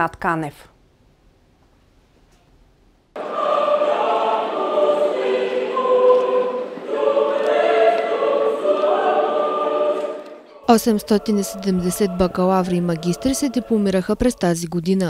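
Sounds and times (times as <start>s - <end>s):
choir singing held notes: 3.2s - 14.6s.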